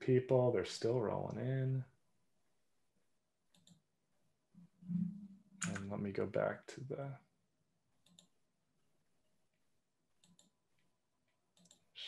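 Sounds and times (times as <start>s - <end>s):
computer mouse clicks: 3.5s - 3.8s, 5.6s - 5.9s, 8.0s - 8.4s, 10.2s - 10.9s, 11.5s - 11.9s.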